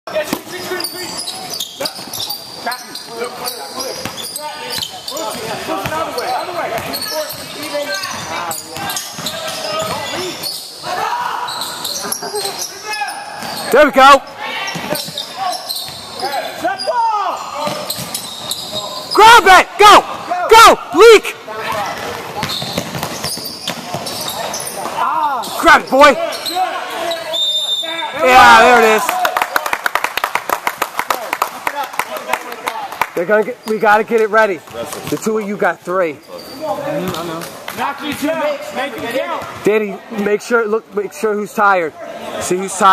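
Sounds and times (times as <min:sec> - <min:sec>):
voices calling: 0:00.1 - 0:29.7
loud shout: 0:10.8 - 0:11.6, 0:19.1 - 0:21.4, 0:25.0 - 0:29.7
shoes moving on court: 0:21.7 - 0:25.0
basketball bouncing on wooden floor: 0:22.0 - 0:24.2
people clapping: 0:28.8 - 0:33.8.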